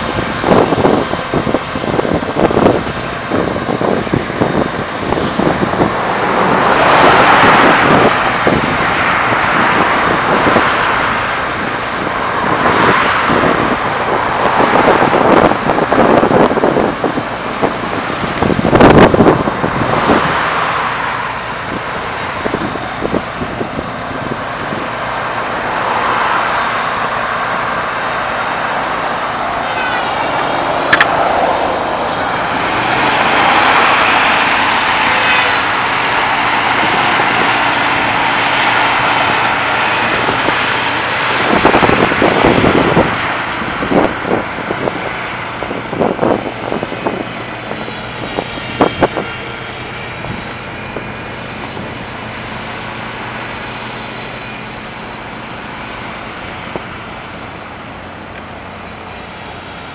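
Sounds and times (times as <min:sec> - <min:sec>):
passing road traffic: 0:00.0 - 0:59.9
wind gusts on microphone: 0:00.0 - 0:59.9.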